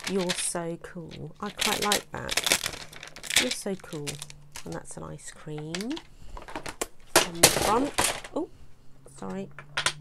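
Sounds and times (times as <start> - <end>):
hard plastic blocks knocking together: 0.0 - 5.0, 5.6 - 8.4, 9.6 - 10.0.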